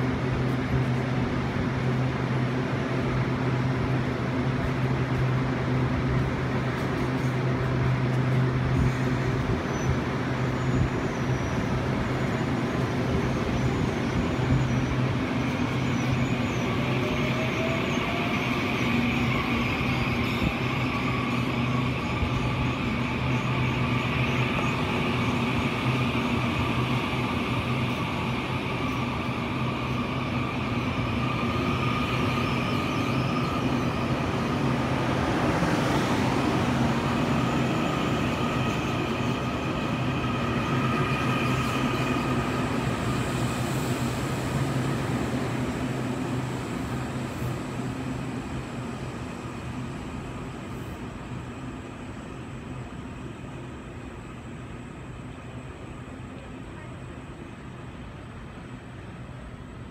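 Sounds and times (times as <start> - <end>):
electric train humming: 0.0 - 59.9.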